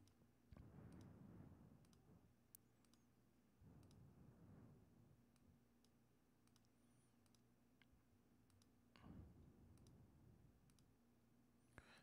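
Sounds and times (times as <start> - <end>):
computer mouse clicks: 2.6 - 3.1, 5.3 - 7.5, 8.5 - 8.8, 10.7 - 10.9.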